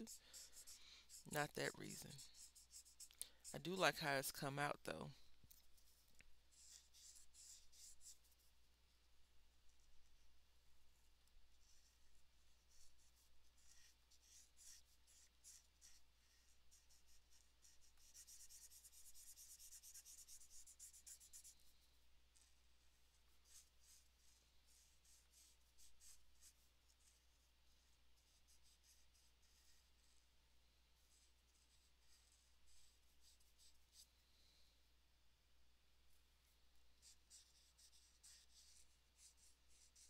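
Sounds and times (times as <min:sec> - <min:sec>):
marker scratching on paper: 0:00.0 - 0:04.9, 0:05.5 - 0:08.5, 0:11.5 - 0:21.8, 0:22.4 - 0:30.2, 0:31.0 - 0:34.1, 0:37.0 - 0:40.0.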